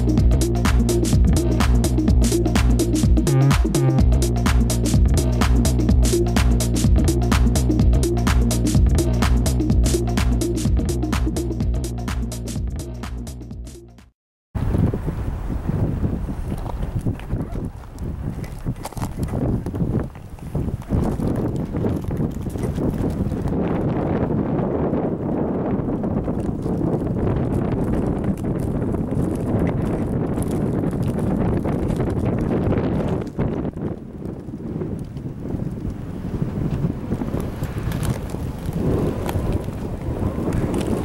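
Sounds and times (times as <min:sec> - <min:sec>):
wind buffeting microphone: 0:14.6 - 0:41.0.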